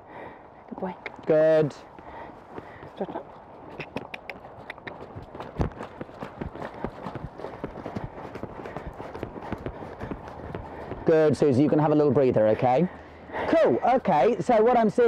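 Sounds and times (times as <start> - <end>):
horse hoofbeats: 1.8 - 12.8.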